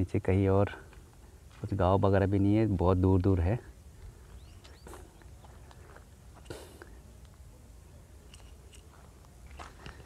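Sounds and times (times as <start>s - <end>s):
footsteps on dirt and grass: 0.8s - 2.2s, 4.0s - 7.4s, 8.3s - 10.0s.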